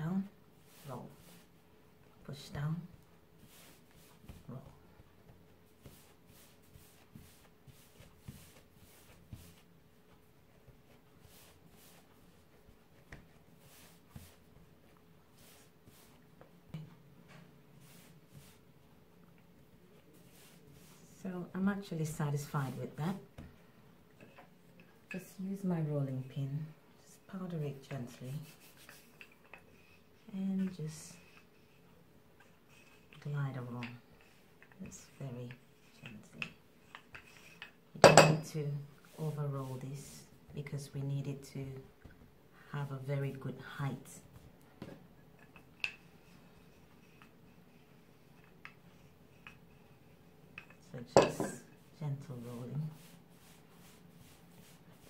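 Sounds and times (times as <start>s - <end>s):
dough being patted: 2.4s - 16.5s.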